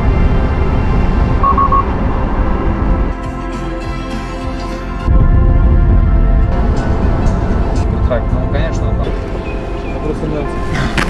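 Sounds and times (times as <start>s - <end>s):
car rumbling on road: 0.0s - 3.4s, 5.0s - 11.0s
background music: 0.0s - 11.0s
high electronic beeps: 1.4s - 1.9s.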